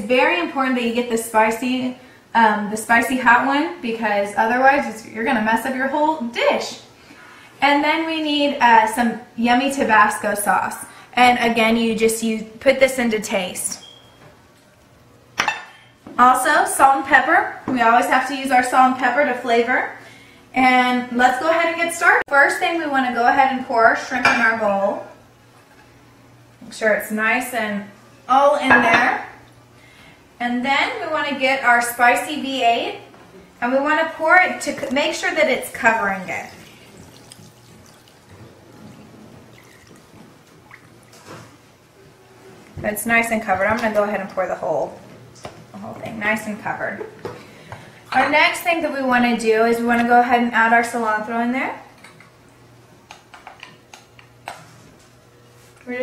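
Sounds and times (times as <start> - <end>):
juice pouring into bowl: 36.1 - 41.2
soft liquid splash: 36.2 - 38.8, 39.5 - 41.2.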